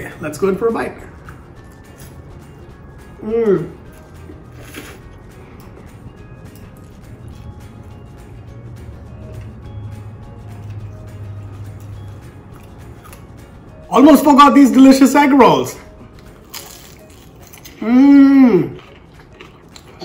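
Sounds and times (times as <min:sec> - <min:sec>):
quiet background music: 0:00.0 - 0:20.0.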